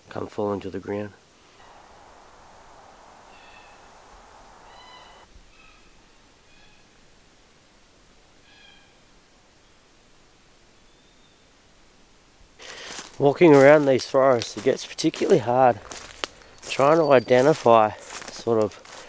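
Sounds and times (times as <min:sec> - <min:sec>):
soft hiss: 0:00.0 - 0:19.0
faint bird calls: 0:01.5 - 0:07.0, 0:08.4 - 0:09.1.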